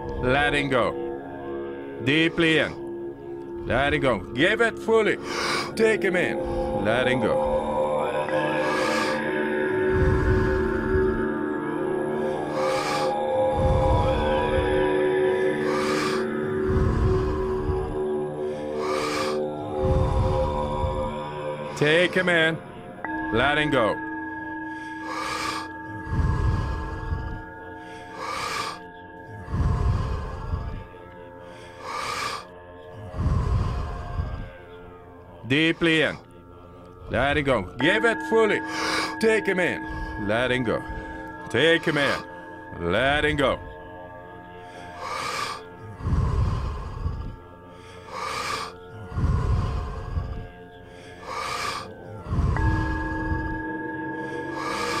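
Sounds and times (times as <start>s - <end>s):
background music drone: 0.0s - 55.0s
person breathing deeply: 5.1s - 55.0s
sharp hissing inhales: 5.2s - 5.8s, 12.2s - 13.8s, 18.4s - 19.4s, 24.0s - 30.7s, 31.5s - 32.5s, 38.6s - 40.2s, 44.6s - 55.0s
bell-like tone ringing: 22.9s - 27.4s, 37.8s - 44.2s, 52.5s - 55.0s
rushing exhale: 50.9s - 55.0s.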